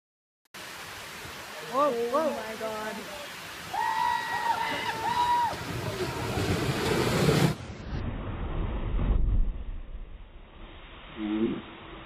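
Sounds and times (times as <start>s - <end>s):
water rushing down chute: 0.6s - 8.8s
person yelling: 3.7s - 5.6s
deep churning splash: 5.0s - 11.2s.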